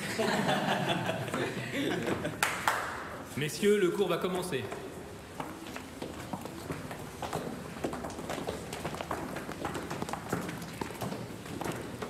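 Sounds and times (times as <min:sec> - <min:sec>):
horse hooves on hard street: 0:04.7 - 0:12.0.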